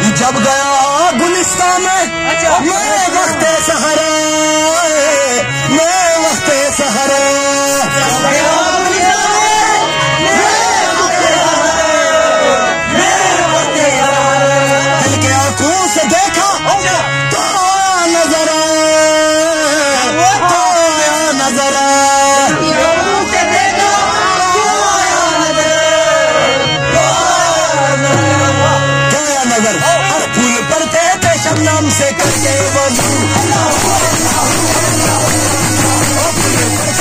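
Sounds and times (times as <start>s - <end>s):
harmonium chords: 0.0s - 37.0s
men singing together: 2.0s - 16.0s, 19.4s - 29.2s, 29.8s - 37.0s.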